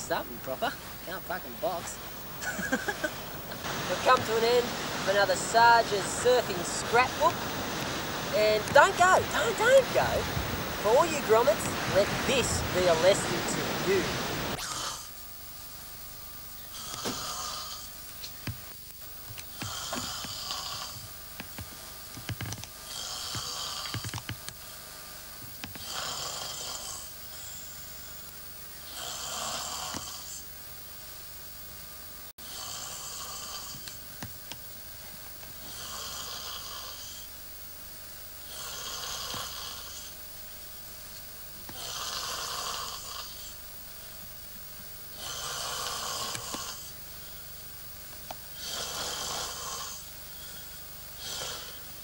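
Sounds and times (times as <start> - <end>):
man snoring: 14.6 - 15.1, 16.7 - 18.0, 19.5 - 21.1, 22.3 - 24.2, 25.7 - 28.2, 28.8 - 30.4, 32.4 - 34.0, 35.6 - 37.3, 38.4 - 40.2, 41.7 - 43.6, 45.1 - 46.9, 48.6 - 51.9.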